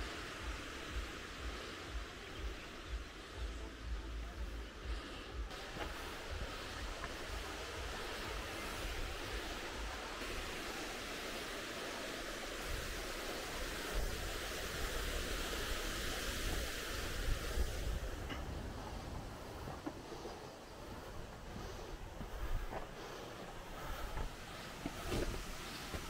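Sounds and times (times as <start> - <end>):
waterfall rushing: 0.0 - 26.0
wind rumble on microphone: 12.5 - 26.0.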